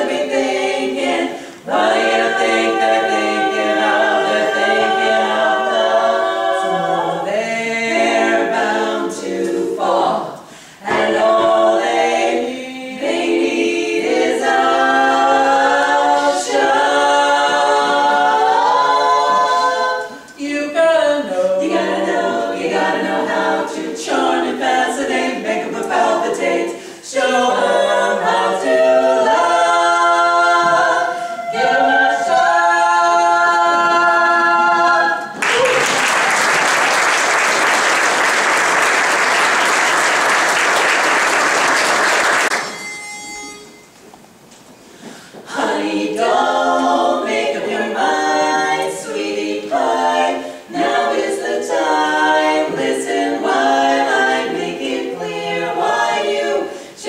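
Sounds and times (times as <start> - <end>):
women singing a cappella harmony: 0.0 - 35.4, 44.9 - 57.0
audience applause: 35.4 - 42.7.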